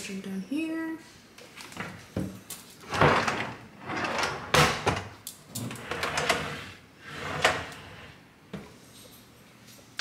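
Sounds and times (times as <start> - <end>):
drawer sliding on runners: 2.8 - 8.2.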